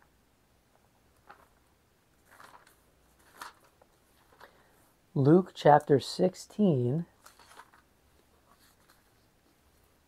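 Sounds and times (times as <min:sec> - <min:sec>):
thin pages being turned: 0:01.1 - 0:01.6, 0:02.2 - 0:04.5, 0:07.2 - 0:09.9.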